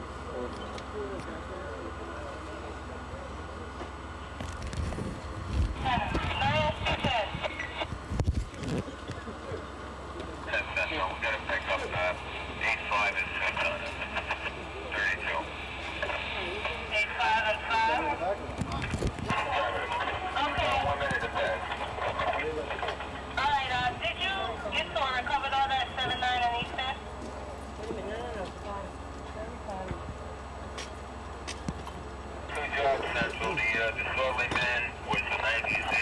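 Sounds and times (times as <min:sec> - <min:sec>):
people talking indistinctly: 0:08.8 - 0:30.4, 0:32.5 - 0:36.0.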